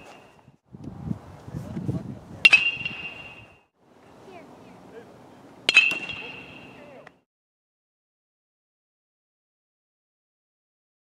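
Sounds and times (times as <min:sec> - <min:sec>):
metal bat pinging on ball: 0:02.4 - 0:03.5, 0:05.7 - 0:07.0.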